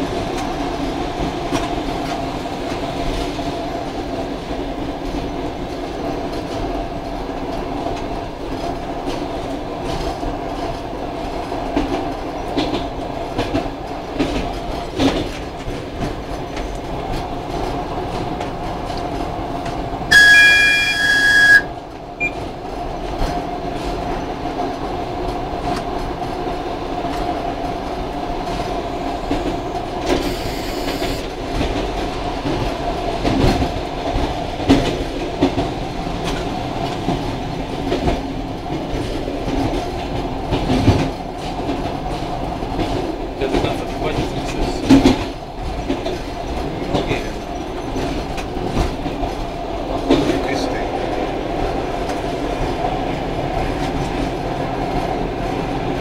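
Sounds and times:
electric train hum: 0:00.0 - 0:56.0.

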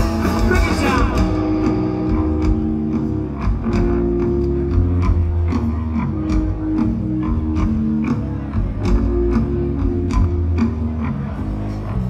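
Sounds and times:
bass guitar: 0:00.0 - 0:12.0
electric guitars: 0:00.0 - 0:12.0.

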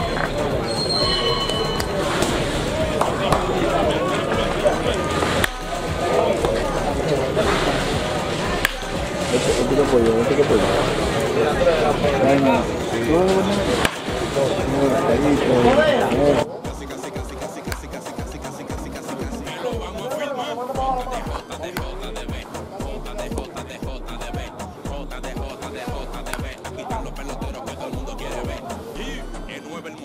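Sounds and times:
people calling and chattering: 0:00.0 - 0:30.0
baseball bat cracking balls: 0:01.8 - 0:05.7, 0:06.3 - 0:06.6, 0:07.4 - 0:09.1, 0:13.5 - 0:14.2, 0:21.3 - 0:22.0, 0:26.2 - 0:26.6.

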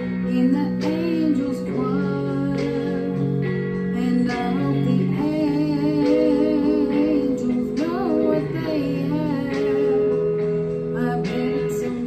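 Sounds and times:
backing music: 0:00.0 - 0:12.0.

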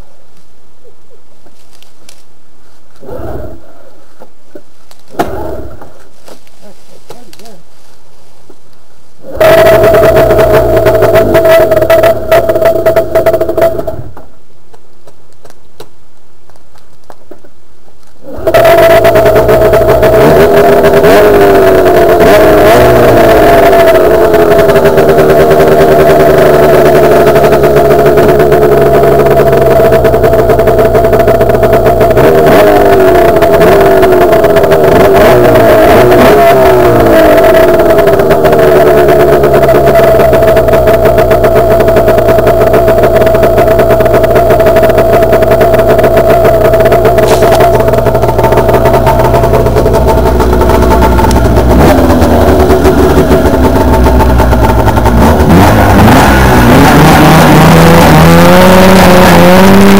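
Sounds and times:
snowmobile engine revving: 0:03.0 - 0:04.0, 0:04.6 - 0:07.7, 0:09.2 - 0:14.2, 0:18.2 - 0:59.9.

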